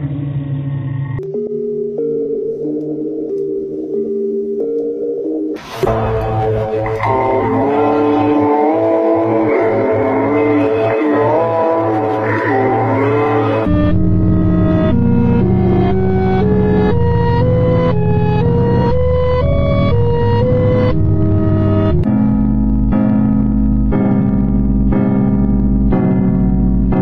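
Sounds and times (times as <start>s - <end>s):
droning music with sliding tones: 0.0s - 27.0s
pulsing electronic music: 1.2s - 27.0s.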